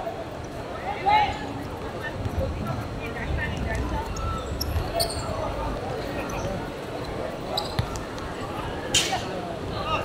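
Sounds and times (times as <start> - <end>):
football kicked and bouncing: 7.7 - 8.0.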